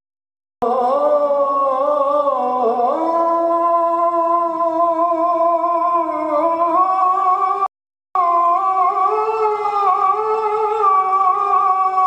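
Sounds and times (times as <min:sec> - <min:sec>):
man chanting through microphone: 0:00.6 - 0:12.0.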